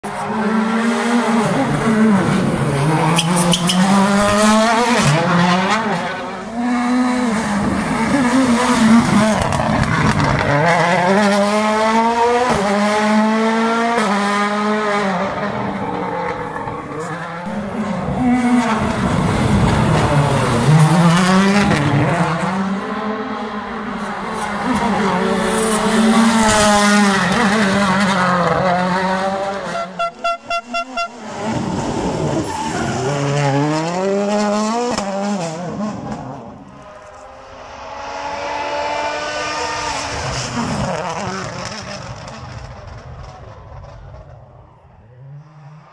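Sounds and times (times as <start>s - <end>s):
rally car engine revving hard: 0.1s - 30.0s, 31.2s - 36.6s, 37.7s - 43.0s.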